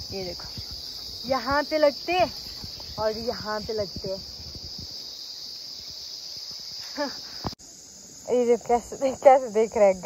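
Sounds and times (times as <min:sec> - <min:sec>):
insect chorus droning: 0:00.0 - 0:10.0.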